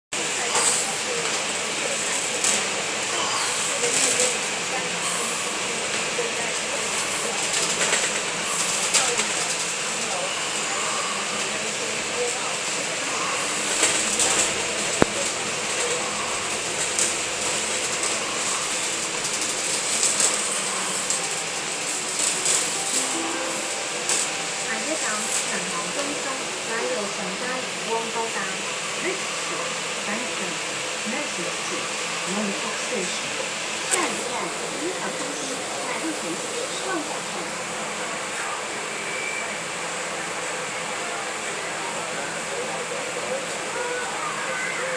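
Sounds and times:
indistinct voices murmuring: 0:00.2 - 0:44.9.

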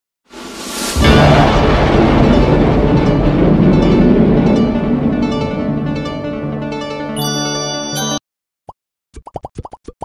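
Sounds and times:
music sting: 0:01.0 - 0:08.2.

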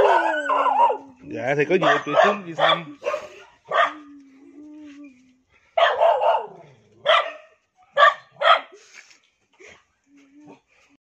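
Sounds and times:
dog barking: 0:00.0 - 0:01.0, 0:01.8 - 0:04.0, 0:05.8 - 0:08.8.

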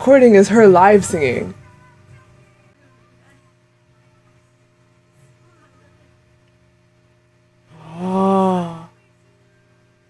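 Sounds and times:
woman humming wordlessly: 0:07.7 - 0:09.2.

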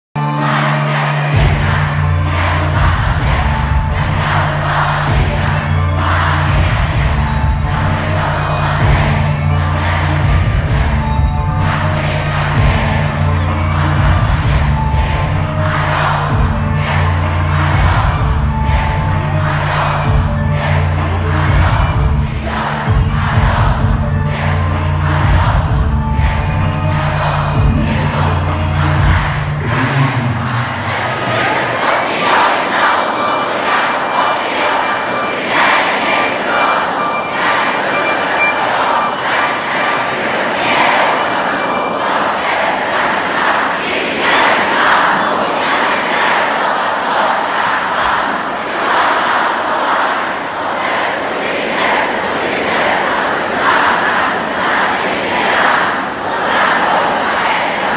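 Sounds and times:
crowd shouting and cheering: 0:00.2 - 0:57.9
bass-heavy hip-hop backing track: 0:01.3 - 0:31.0.

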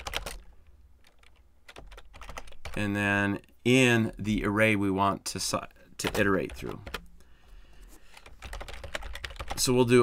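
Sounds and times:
computer keyboard typing: 0:00.0 - 0:02.8, 0:06.0 - 0:07.1, 0:08.1 - 0:09.7.

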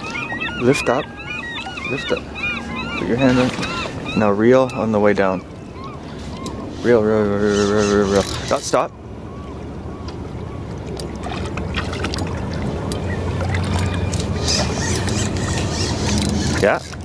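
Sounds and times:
boat motor humming: 0:00.0 - 0:17.0.

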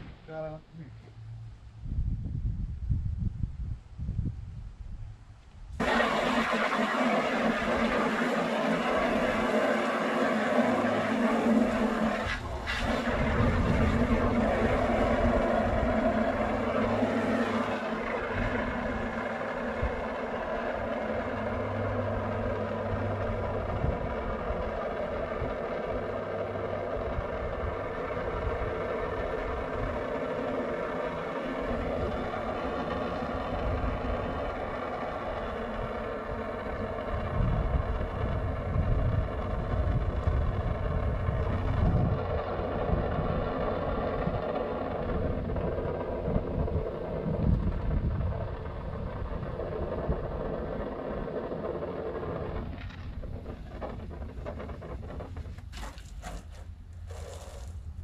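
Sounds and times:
wind on microphone: 0:01.4 - 0:56.4
water spraying: 0:05.8 - 0:23.2
pressure washer motor running: 0:05.8 - 0:57.8.

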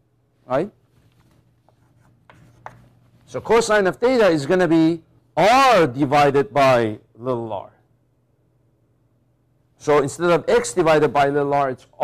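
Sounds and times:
chalk scratching on chalkboard: 0:01.6 - 0:02.9
chalk tapping on board: 0:01.6 - 0:02.9.

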